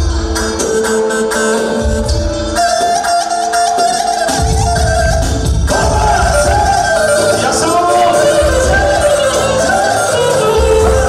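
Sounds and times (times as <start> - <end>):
clarinet ornamented melody: 0.1 - 11.0.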